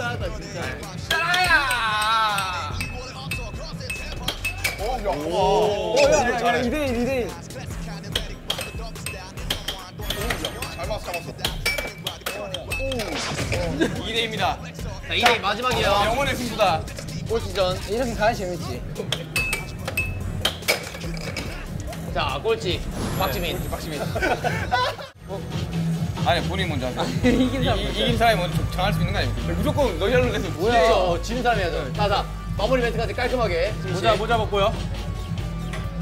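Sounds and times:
excited voices calling out: 0.0s - 7.4s
air hockey puck and mallets clacking: 1.1s - 4.9s, 8.0s - 13.3s, 19.0s - 21.6s
air hockey puck clacking: 8.1s - 13.1s.

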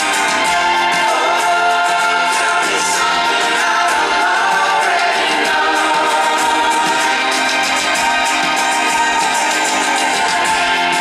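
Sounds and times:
crowd singing along: 0.0s - 11.0s
electric guitar: 0.0s - 11.0s
live band playing: 0.0s - 11.0s.

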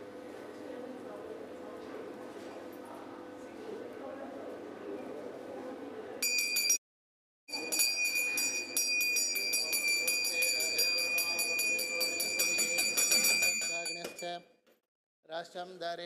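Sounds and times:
hand bell rung rapidly: 6.2s - 6.8s, 7.5s - 14.4s.

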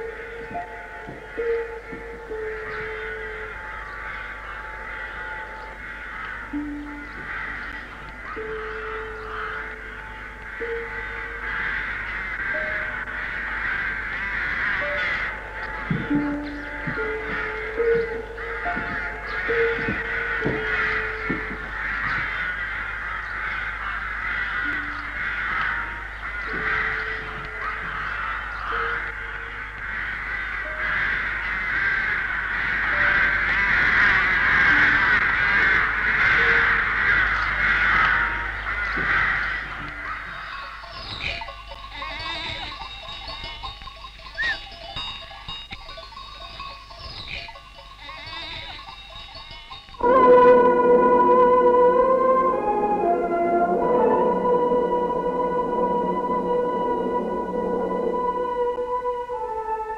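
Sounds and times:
flock of crows cawing: 0.0s - 43.8s, 44.4s - 45.6s, 47.0s - 59.5s.

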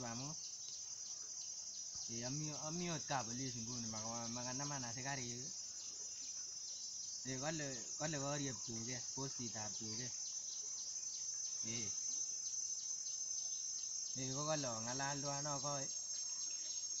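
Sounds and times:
insects chirring: 0.0s - 17.0s
man's drawn-out wavering voice: 11.7s - 11.9s.

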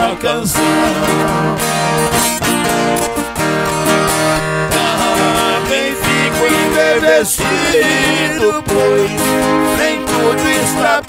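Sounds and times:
acoustic guitars playing: 0.0s - 11.0s.

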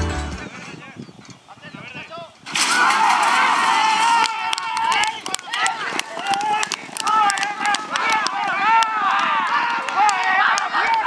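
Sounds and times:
sharp clicks: 4.2s - 11.0s.

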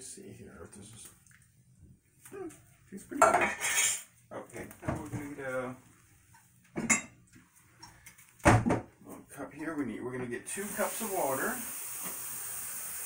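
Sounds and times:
metal and dishes clanking: 3.2s - 4.1s, 6.8s - 7.2s.

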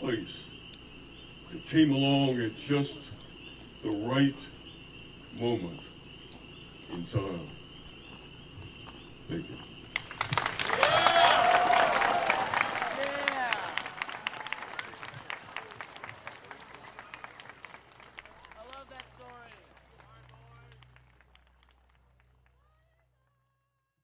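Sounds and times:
audience applauding and cheering: 9.9s - 22.9s
shouted whoops: 10.6s - 17.3s.

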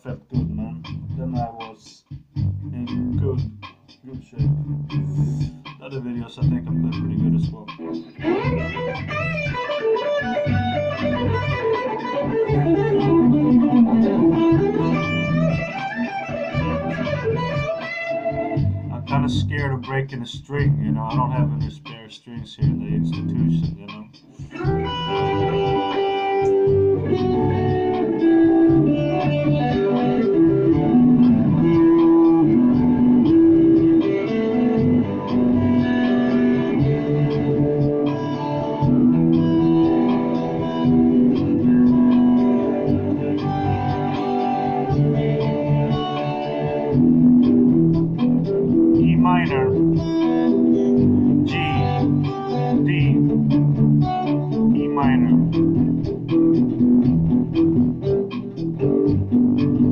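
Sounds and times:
electric guitar melodic lines: 2.3s - 22.0s, 22.6s - 59.9s.

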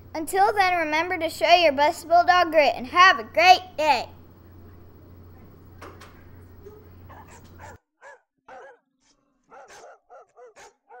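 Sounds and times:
low steady hum: 0.0s - 7.8s
dog barking: 6.6s - 11.0s.

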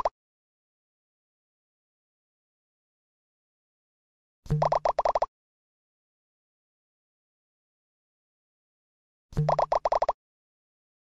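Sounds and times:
bouncy blips: 4.5s - 5.3s, 9.4s - 10.2s.

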